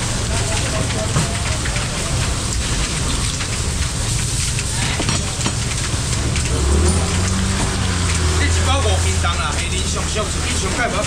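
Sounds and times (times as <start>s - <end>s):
steady rain falling: 0.0s - 11.0s.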